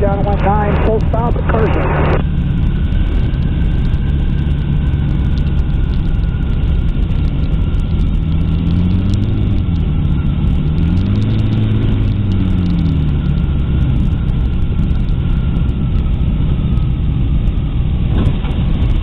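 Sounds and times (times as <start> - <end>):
engine and propeller running: 0.0 - 19.0
wind rushing over microphone: 0.0 - 19.0.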